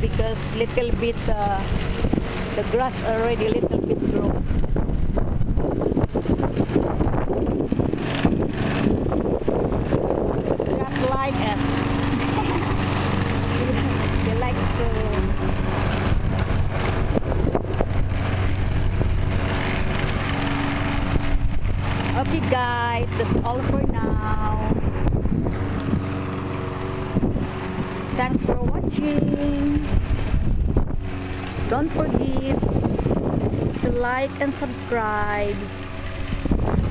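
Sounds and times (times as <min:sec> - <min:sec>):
lawn mower engine running: 0:00.0 - 0:36.9
wind buffeting microphone: 0:00.0 - 0:36.9.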